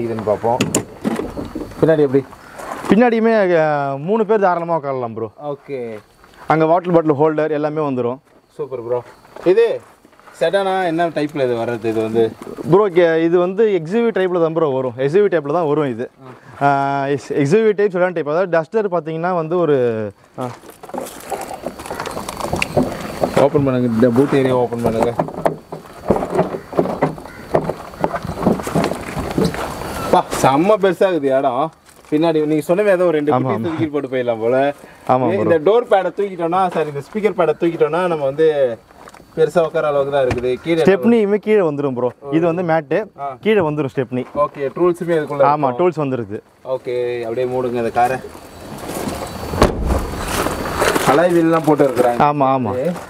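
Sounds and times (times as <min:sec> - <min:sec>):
car tailgate thump: 0:00.6 - 0:01.5, 0:49.5 - 0:50.5
rustling: 0:20.1 - 0:33.0, 0:46.5 - 0:53.0.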